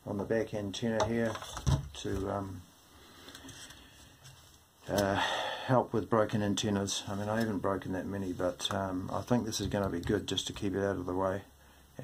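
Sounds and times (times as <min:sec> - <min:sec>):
man's voice: 0:04.9 - 0:11.5.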